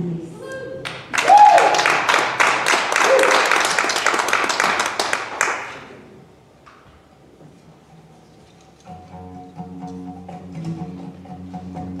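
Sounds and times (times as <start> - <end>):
audience clapping: 0.8 - 6.0.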